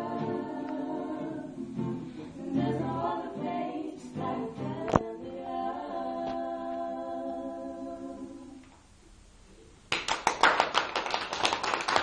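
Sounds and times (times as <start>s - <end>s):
people clapping: 9.9s - 12.0s.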